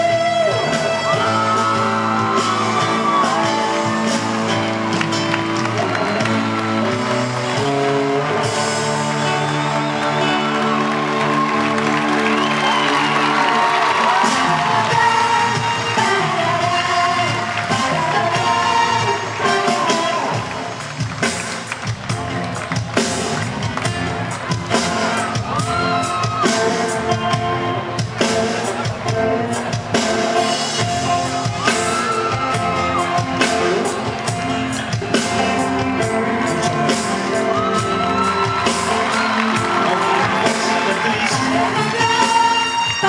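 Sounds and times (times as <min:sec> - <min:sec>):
live band playing: 0:00.0 - 0:43.0
audience cheering and whooping: 0:00.1 - 0:27.3, 0:29.9 - 0:43.0.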